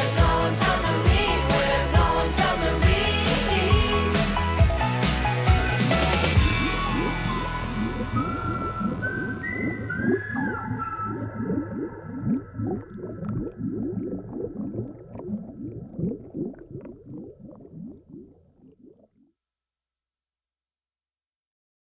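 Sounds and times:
gurgling pitch sweeps: 5.9s - 19.3s
high whale-like gliding calls: 6.5s - 12.0s.

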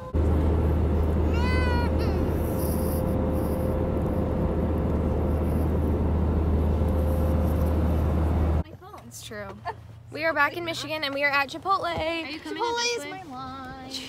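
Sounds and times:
jet engine and airflow rumble: 0.0s - 8.6s.

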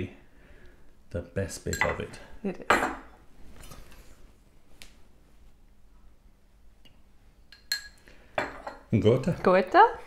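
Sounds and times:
spoon clinking against crockery: 1.7s - 2.1s, 7.5s - 9.5s.

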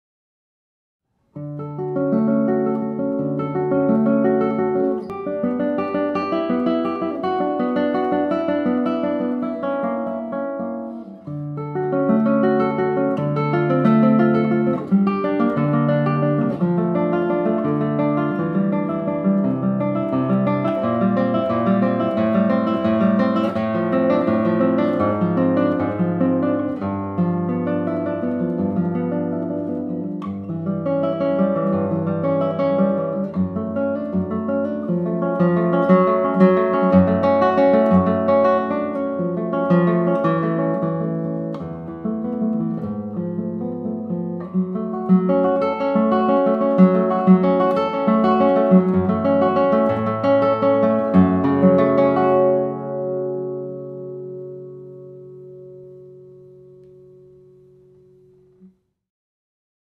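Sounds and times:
classical guitar fingerstyle: 1.2s - 58.8s.

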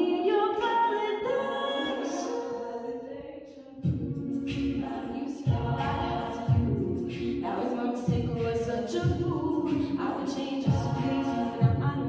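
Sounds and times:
women singing a cappella harmony: 0.0s - 12.0s
beatboxed kick drum beats: 3.8s - 12.0s.

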